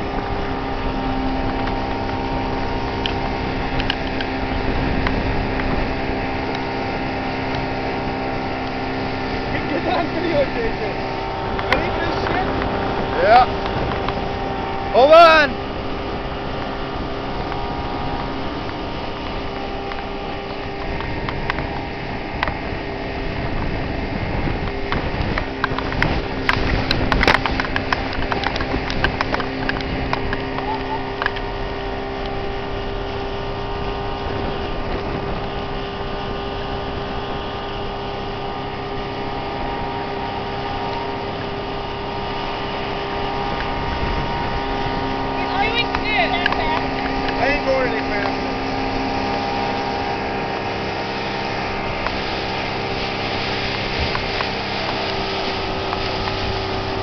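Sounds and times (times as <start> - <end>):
outboard motor running: 0.0 - 57.0
wind and water rushing: 0.0 - 57.0.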